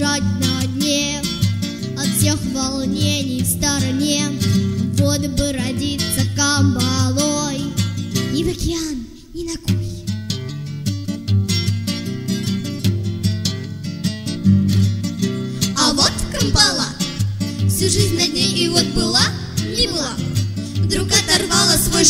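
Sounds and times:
strummed acoustic guitar: 0.0s - 9.0s, 9.6s - 22.0s
person singing with vibrato: 15.6s - 22.0s.

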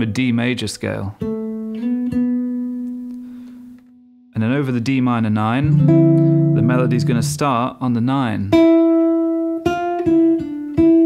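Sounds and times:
plucked guitar note ringing: 5.6s - 7.7s.

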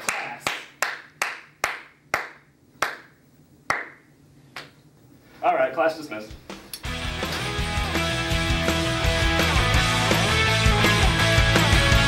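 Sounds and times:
scattered handclaps: 0.0s - 4.0s.

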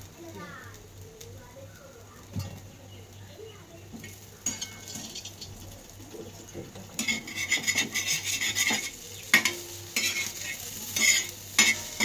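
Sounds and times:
food sizzling in oil: 0.0s - 12.0s
metal fork scraping pan: 4.0s - 5.5s, 6.8s - 12.0s.

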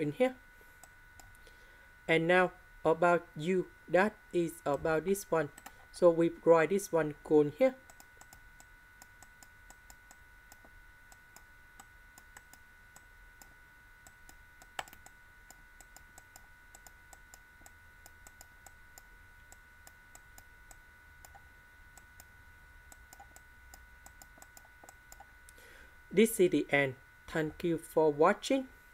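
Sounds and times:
faint electronic whine: 0.0s - 28.9s.

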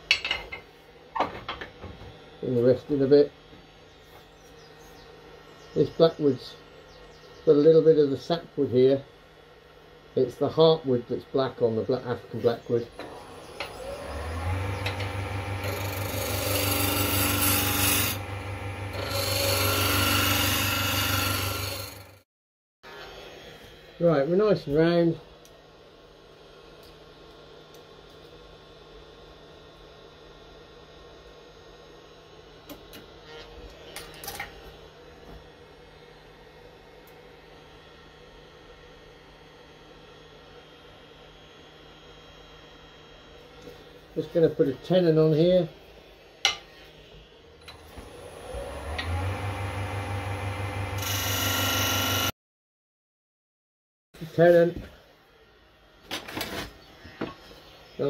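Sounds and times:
wood lathe humming: 12.9s - 22.2s, 47.7s - 52.3s
gouge cutting wood: 14.8s - 22.1s.

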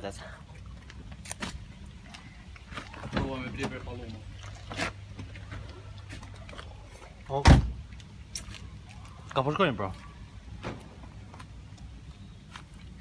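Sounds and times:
car door shutting: 7.4s - 7.8s.

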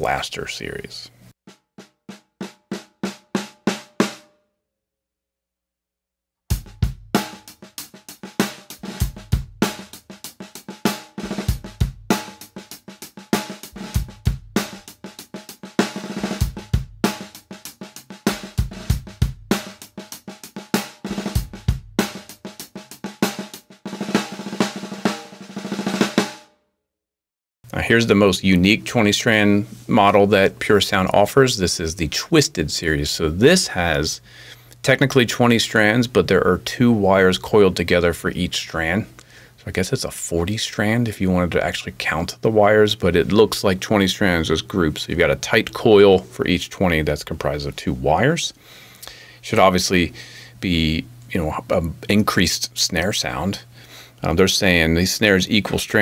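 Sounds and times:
drum kit groove: 1.5s - 4.2s, 6.5s - 26.4s, 27.7s - 56.0s
snare drum single strokes: 7.2s - 26.4s.

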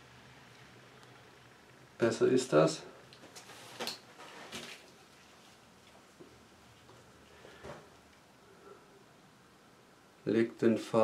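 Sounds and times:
faint rustling handling noise: 2.5s - 8.2s.

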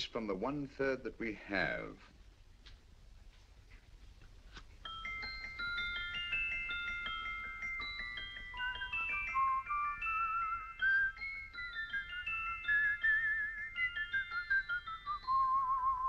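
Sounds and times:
music box tune: 4.7s - 16.0s
wavering held melody: 4.7s - 16.0s.

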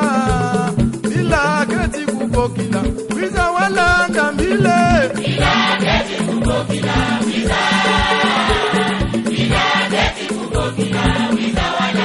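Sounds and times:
steady drum beat: 0.0s - 12.0s
choir singing held notes: 4.0s - 12.0s.

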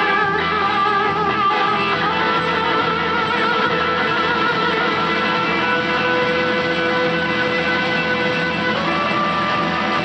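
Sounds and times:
electric guitar sustained note: 0.0s - 10.0s.

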